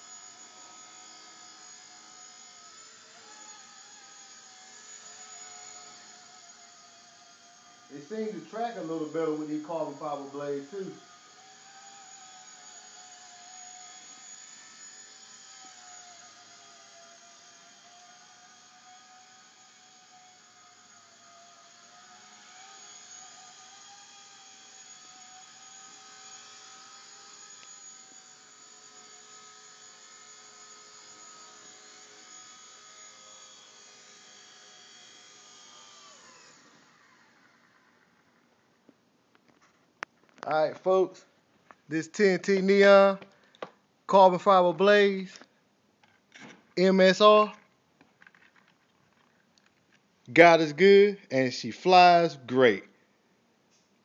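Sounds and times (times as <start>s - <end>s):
small helicopter motor whine: 0.0s - 38.7s.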